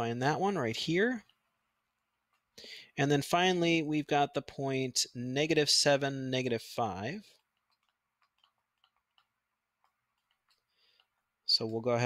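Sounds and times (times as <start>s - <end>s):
stylus tapping on pen tablet: 7.4s - 11.3s.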